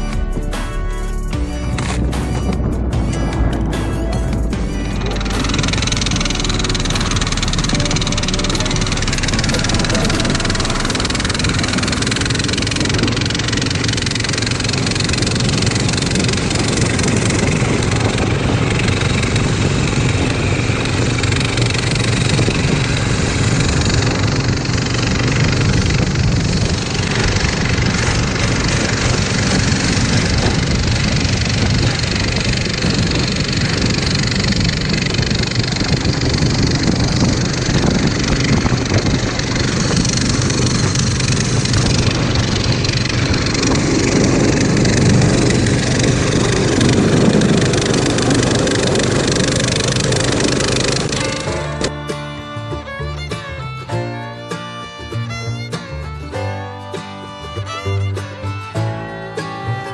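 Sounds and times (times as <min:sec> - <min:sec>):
rushing travel noise: 0:00.0 - 0:59.9
snow tow engine running: 0:00.0 - 0:59.9.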